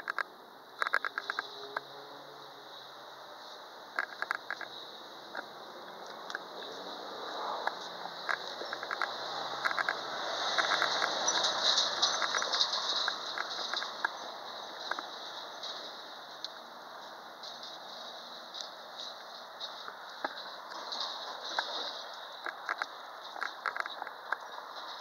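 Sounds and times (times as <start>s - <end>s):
rushing noise: 1.0s - 25.0s.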